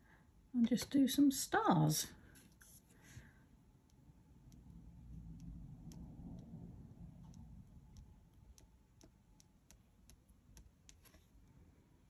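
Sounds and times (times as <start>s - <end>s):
low room hum: 0.0s - 12.0s
pen nib tapping on paper: 3.9s - 6.6s, 7.2s - 11.2s.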